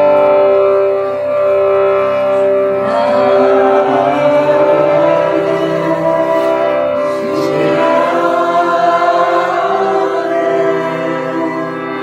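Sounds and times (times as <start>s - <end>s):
drone-like instrumental accompaniment: 0.0s - 12.0s
person singing long notes: 0.0s - 12.0s.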